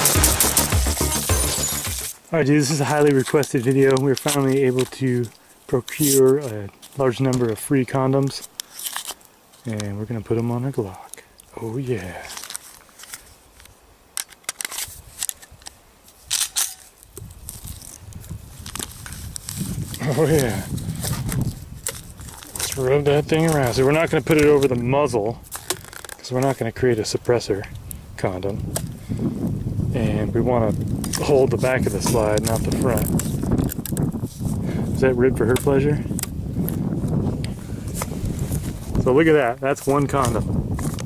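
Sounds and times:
rubber rustling handling noise: 0:02.0 - 0:11.2, 0:12.0 - 0:27.7, 0:30.6 - 0:41.0
wrapper crinkles: 0:02.8 - 0:07.1, 0:08.3 - 0:09.7, 0:12.2 - 0:24.7, 0:25.4 - 0:26.6
wind rumble on microphone: 0:17.1 - 0:25.5, 0:27.0 - 0:41.0.

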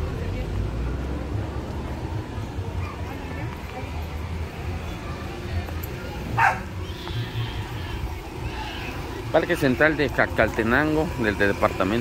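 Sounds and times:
faint background voices: 0:00.0 - 0:12.0
dog bark: 0:06.4 - 0:06.7.

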